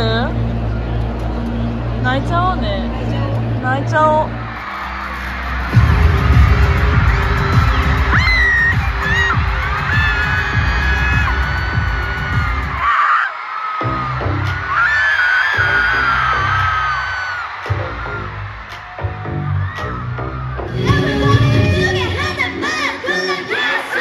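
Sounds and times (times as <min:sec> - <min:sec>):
fans screaming and cheering: 0:00.0 - 0:24.0
loud music with pounding bass: 0:05.1 - 0:12.8, 0:13.8 - 0:23.4.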